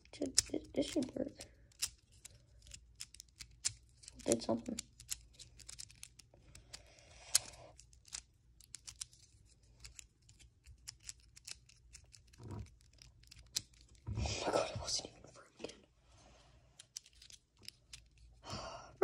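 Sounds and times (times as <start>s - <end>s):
plastic cube layers clicking: 0.1s - 14.0s, 16.8s - 18.4s.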